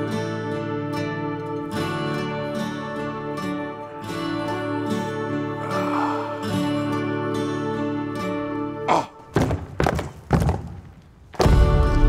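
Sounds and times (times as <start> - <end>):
heavy hollow thunks: 9.3 - 12.0.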